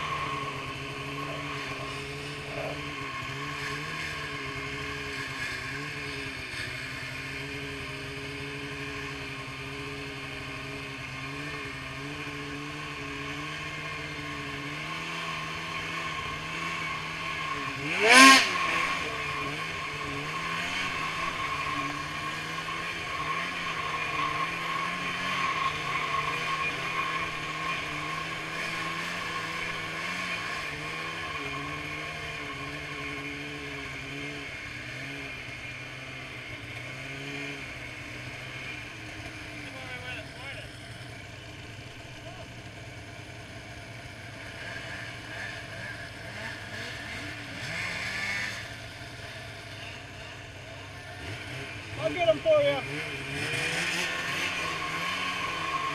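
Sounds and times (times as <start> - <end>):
snowmobile engine running: 0.0 - 55.9.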